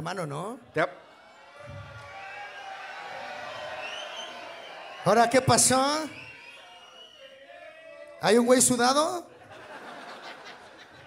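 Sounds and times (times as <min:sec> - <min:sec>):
audience murmuring and chattering: 0:00.7 - 0:08.3.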